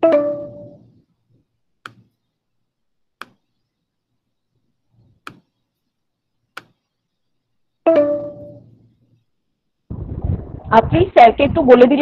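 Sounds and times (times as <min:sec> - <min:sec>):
mouse clicks: 0:01.8 - 0:02.2, 0:03.2 - 0:03.6, 0:05.2 - 0:05.6, 0:06.5 - 0:06.9.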